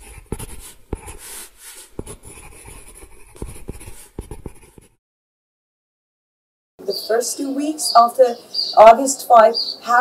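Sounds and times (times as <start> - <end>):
pen scratching across paper: 0.0 - 5.0.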